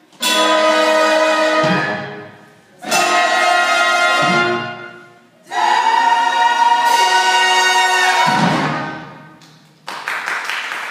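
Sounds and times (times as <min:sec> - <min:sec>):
pit orchestra: 0:00.0 - 0:09.4.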